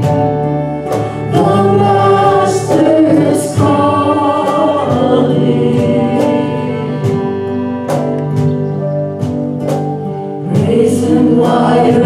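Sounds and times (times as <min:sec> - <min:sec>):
band singing a gospel hymn: 0:00.0 - 0:08.8, 0:09.7 - 0:12.0
keyboard accompaniment: 0:00.0 - 0:12.0.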